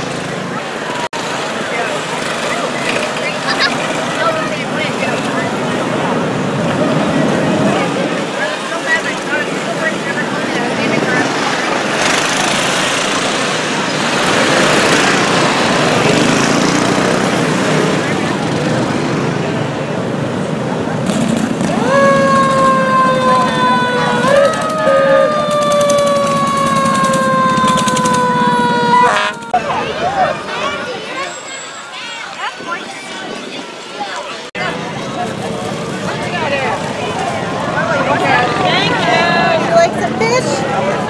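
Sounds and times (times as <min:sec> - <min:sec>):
small gasoline engines driving past: 0:00.0 - 0:31.8
crowd voices: 0:00.0 - 0:41.0
horn blast: 0:27.6 - 0:29.6.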